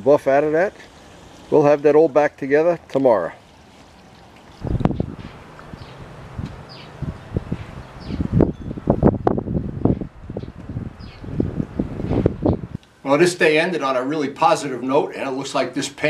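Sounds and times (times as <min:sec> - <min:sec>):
wind buffeting microphone: 0:04.6 - 0:12.8.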